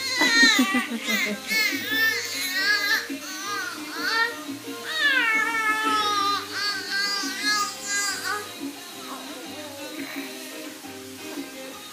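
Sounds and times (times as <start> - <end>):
baby squealing: 0.0 - 8.5.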